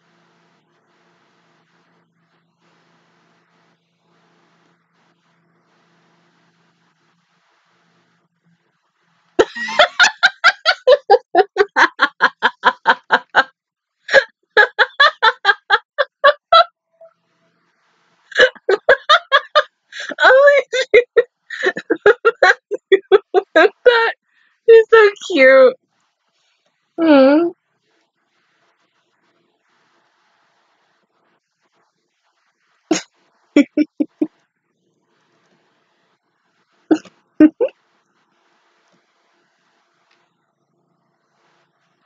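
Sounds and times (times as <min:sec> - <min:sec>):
woman giggling: 0:09.4 - 0:13.5, 0:14.1 - 0:16.7, 0:18.3 - 0:25.8, 0:27.0 - 0:27.5, 0:32.9 - 0:34.3, 0:36.9 - 0:37.7
woman laughing hard: 0:09.4 - 0:13.5, 0:14.1 - 0:16.7, 0:18.3 - 0:25.1, 0:32.9 - 0:34.3, 0:36.9 - 0:37.7.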